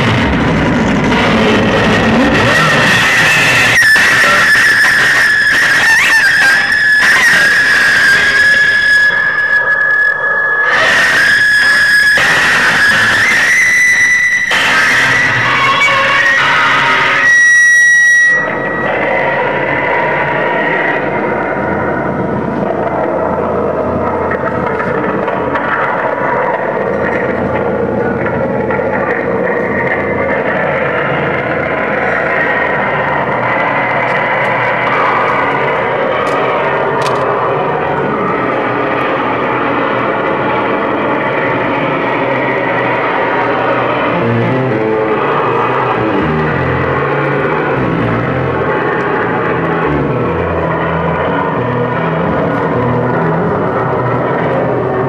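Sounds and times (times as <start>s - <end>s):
choppy bursts of noise: 0.0s - 55.0s
dense churning drone: 0.0s - 55.0s
piercing feedback tone: 0.0s - 55.0s.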